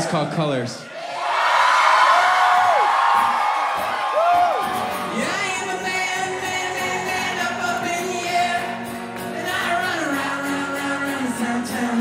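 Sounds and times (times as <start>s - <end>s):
crowd cheering: 0.9s - 7.2s
long whoops: 1.4s - 5.4s.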